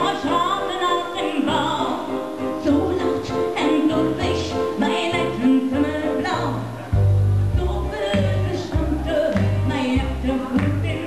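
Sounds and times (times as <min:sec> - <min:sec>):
woman singing into a microphone: 0:00.0 - 0:06.8, 0:07.6 - 0:11.0
bass line: 0:03.9 - 0:11.0
band accompaniment: 0:06.4 - 0:11.0.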